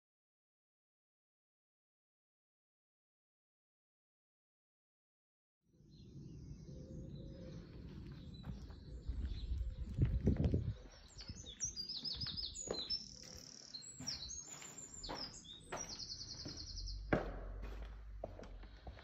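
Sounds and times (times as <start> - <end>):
songbirds singing: 5.8 - 19.0
knocks: 17.1 - 17.7.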